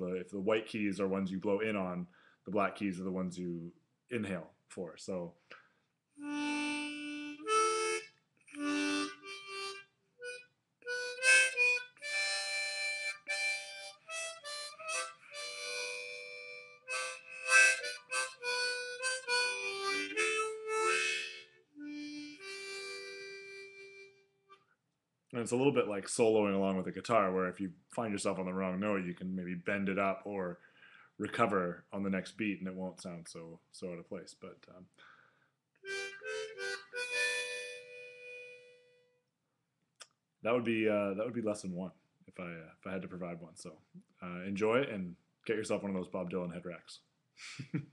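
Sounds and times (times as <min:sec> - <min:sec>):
harmonica single notes: 0:06.2 - 0:24.7, 0:35.8 - 0:39.2.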